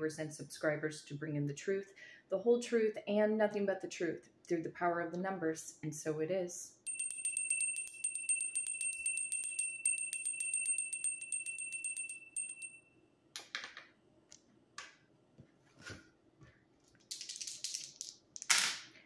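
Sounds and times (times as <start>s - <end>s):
handheld bell shaken rapidly: 6.9s - 12.8s.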